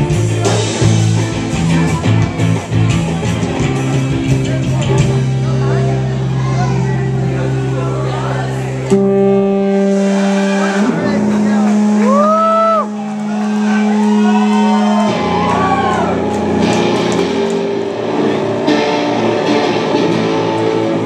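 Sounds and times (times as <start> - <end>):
live rock band playing: 0.0 - 21.0.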